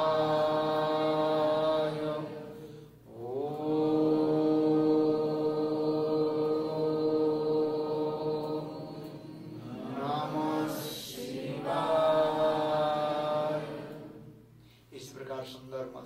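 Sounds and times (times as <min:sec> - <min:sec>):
person chanting held notes: 0:00.0 - 0:14.3.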